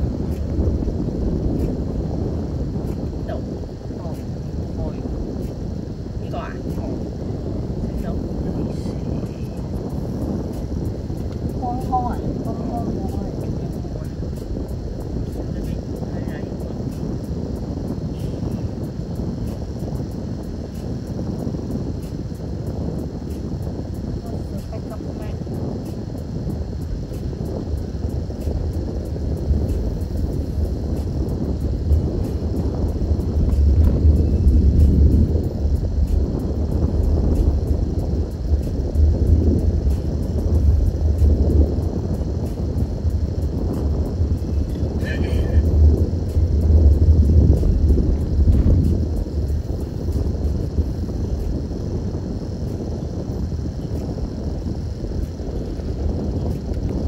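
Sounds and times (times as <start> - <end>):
car engine and tyre rumble: 0.0 - 57.0.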